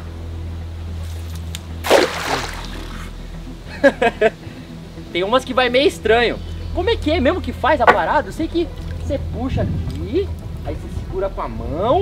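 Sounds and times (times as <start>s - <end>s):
background music: 0.0s - 12.0s
cast net splashing on water: 1.8s - 3.1s.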